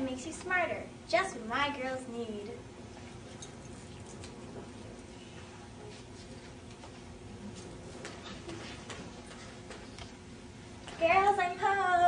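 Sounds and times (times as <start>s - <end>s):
low room noise: 0.0s - 12.0s
faint footsteps: 2.9s - 11.4s.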